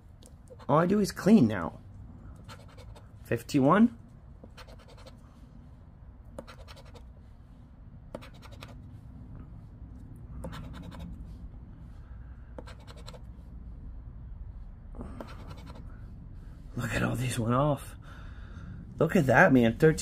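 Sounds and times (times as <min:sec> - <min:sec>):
chip scratching lottery ticket: 0:02.4 - 0:03.1, 0:04.4 - 0:05.2, 0:06.4 - 0:07.1, 0:08.1 - 0:08.8, 0:10.4 - 0:11.2, 0:12.6 - 0:13.3, 0:15.2 - 0:15.9.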